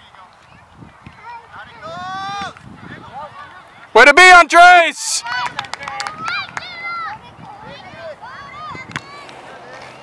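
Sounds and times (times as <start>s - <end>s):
young players shouting: 1.2s - 9.7s.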